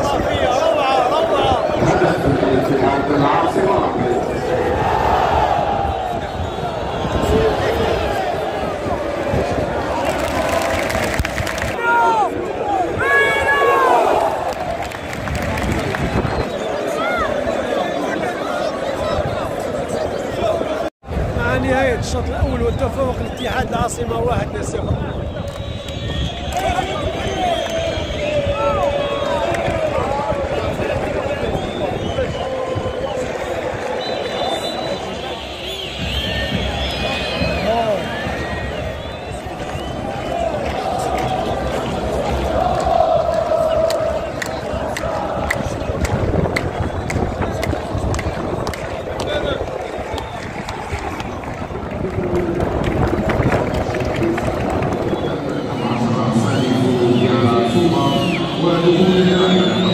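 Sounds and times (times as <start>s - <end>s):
stadium crowd shouting and chanting: 0.0s - 59.9s.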